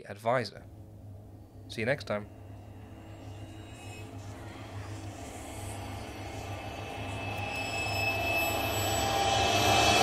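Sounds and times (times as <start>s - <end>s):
thin high tones: 1.4s - 10.0s.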